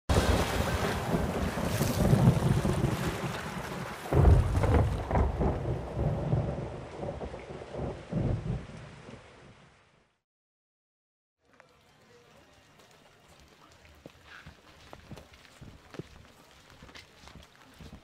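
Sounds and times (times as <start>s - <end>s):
thunder rumbling: 0.1s - 9.6s
steady rain: 0.1s - 10.2s, 11.5s - 18.0s.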